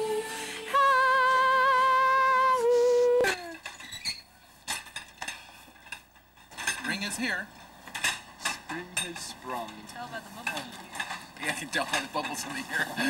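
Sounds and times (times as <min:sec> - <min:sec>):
woman singing long notes: 0:00.0 - 0:03.6.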